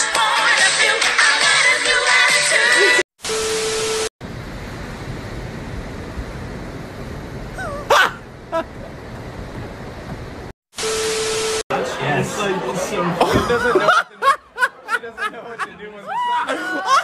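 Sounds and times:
wind and surf noise: 0:04.2 - 0:10.5.

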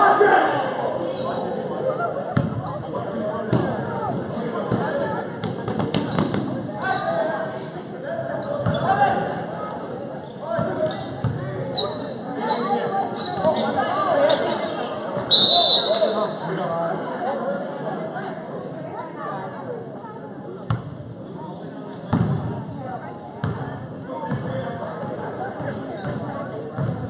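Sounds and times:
echoing voices in a hall: 0:00.0 - 0:27.0
sneakers squeaking: 0:01.0 - 0:01.5, 0:02.4 - 0:07.8, 0:08.4 - 0:09.0, 0:10.2 - 0:16.4, 0:25.6 - 0:27.0.

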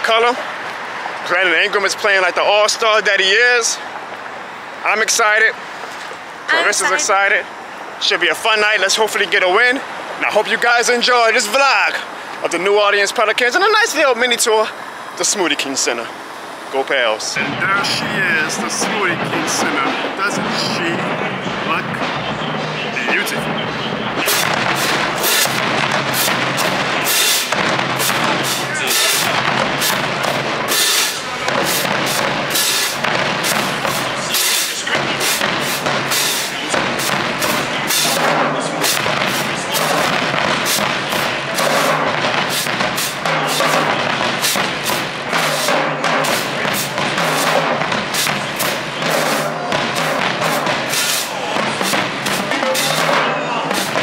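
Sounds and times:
marching drumline playing: 0:17.4 - 0:54.0.

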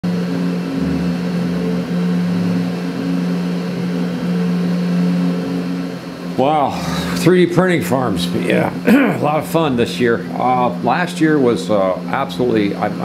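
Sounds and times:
stepper motors humming: 0:00.0 - 0:13.0.

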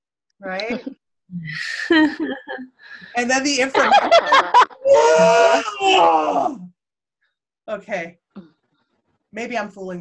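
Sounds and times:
woman groaning: 0:04.8 - 0:06.7.

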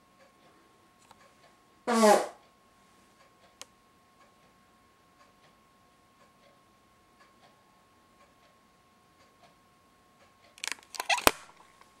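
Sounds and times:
sharp loud camera click: 0:10.6 - 0:11.6
hands rattling video camera: 0:10.6 - 0:11.8.

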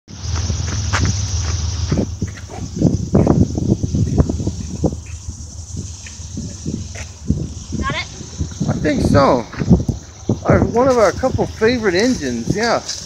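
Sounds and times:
low rumble: 0:00.1 - 0:13.0
footsteps on gravel: 0:00.2 - 0:13.0.

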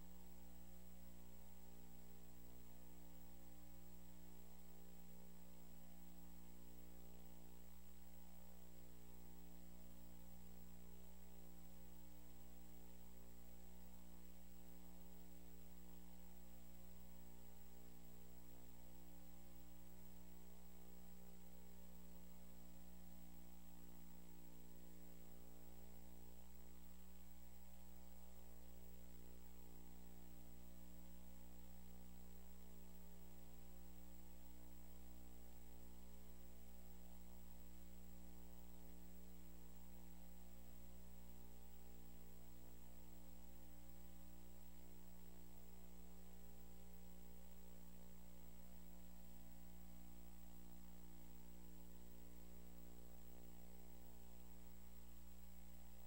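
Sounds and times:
electrical mains hum: 0:00.0 - 0:56.0.

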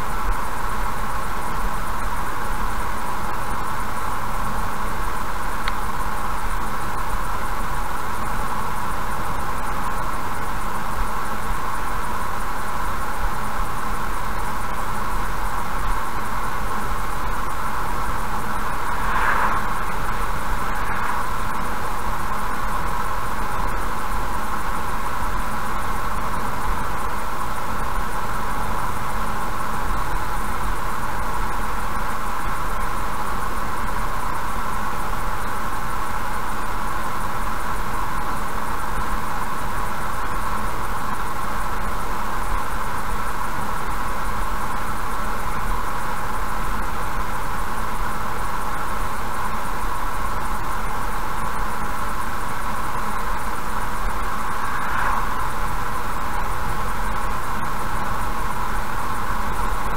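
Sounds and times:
car road noise: 0:15.4 - 0:27.0, 0:52.5 - 0:59.9
tyre and engine sound: 0:16.6 - 0:24.3, 0:52.8 - 0:59.9.

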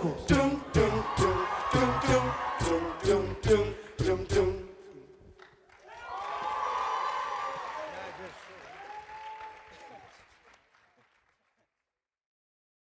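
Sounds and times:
audience applauding and cheering: 0:00.0 - 0:04.0, 0:05.3 - 0:11.6.

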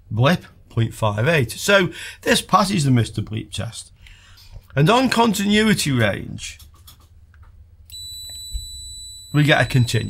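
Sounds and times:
multimeter continuity beep: 0:07.9 - 0:10.0.

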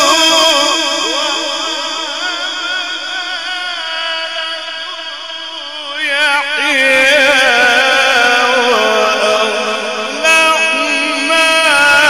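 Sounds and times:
man chanting melodic recitation: 0:00.0 - 0:12.0.

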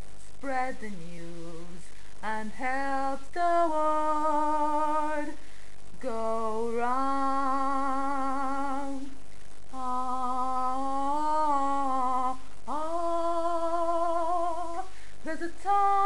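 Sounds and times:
woman singing a cappella: 0:00.0 - 0:16.0.

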